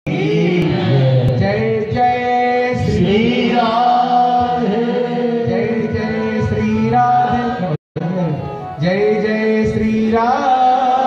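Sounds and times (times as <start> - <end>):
man chanting devotional refrain: 0.1 - 11.0.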